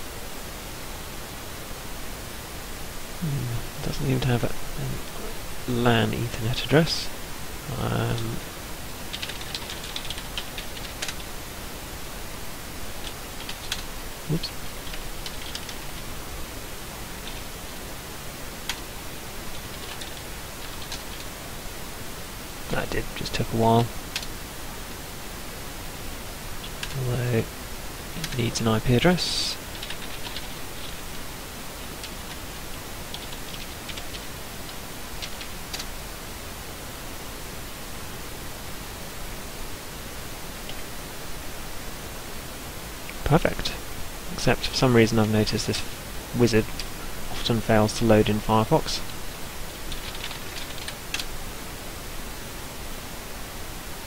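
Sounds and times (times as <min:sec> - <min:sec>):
background hiss: 0:00.0 - 0:54.0.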